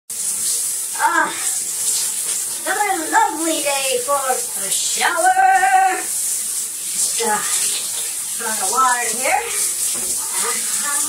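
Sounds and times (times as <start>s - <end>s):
shower water spraying: 0.1s - 11.0s.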